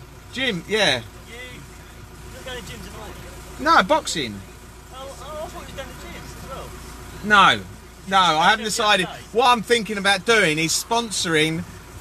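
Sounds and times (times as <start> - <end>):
van engine rumble: 0.0 - 12.0.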